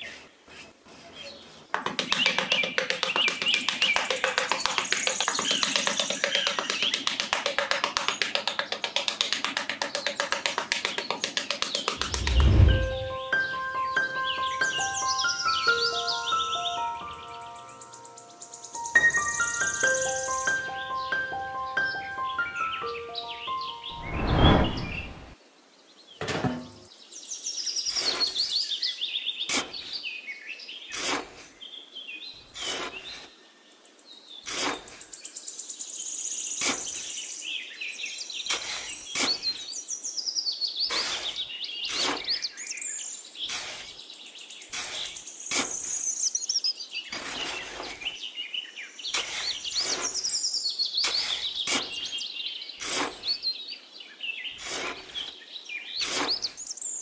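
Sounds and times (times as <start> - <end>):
trowel scraping sand: 0.0 - 12.9, 27.9 - 28.5, 29.5 - 29.9, 30.9 - 31.6, 32.5 - 33.4, 34.4 - 35.1, 36.6 - 37.1, 38.5 - 39.7, 40.9 - 42.4, 43.4 - 44.0, 44.7 - 46.0, 47.1 - 48.2, 49.1 - 50.4, 51.0 - 52.2, 52.8 - 53.4, 54.6 - 55.3, 56.0 - 56.6
songbirds chirping and singing: 1.1 - 12.0, 13.2 - 24.0.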